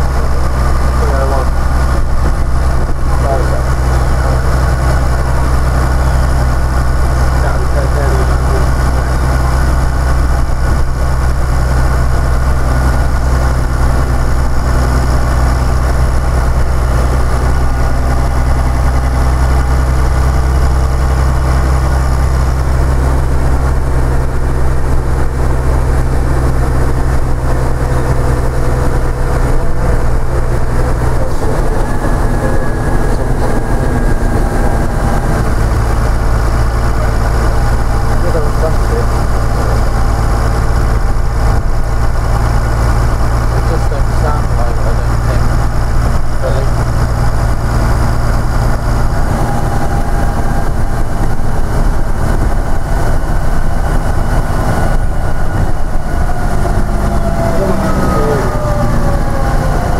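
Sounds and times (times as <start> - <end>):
bus diesel engine idling: 0.0 - 59.9.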